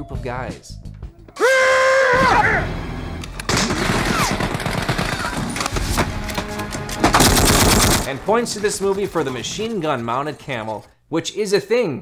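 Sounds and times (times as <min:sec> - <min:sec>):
film music: 0:00.0 - 0:10.9
machine-gun fire bursts: 0:03.5 - 0:05.6, 0:07.2 - 0:08.1.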